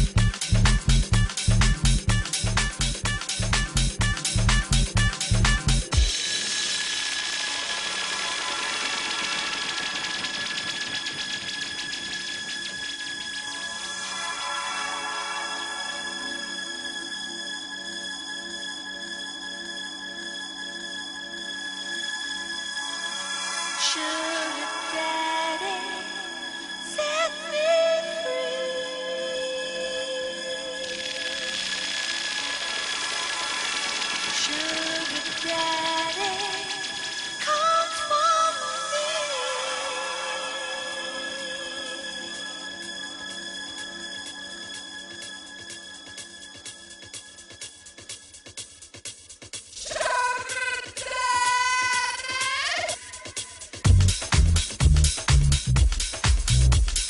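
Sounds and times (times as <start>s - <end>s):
electronic dance kick drum: 0.0s - 6.8s, 48.1s - 57.0s
fast ticking hi-hats: 0.0s - 14.1s, 30.9s - 37.8s, 44.7s - 57.0s
fast-pulsing electronic tone: 30.7s - 37.6s.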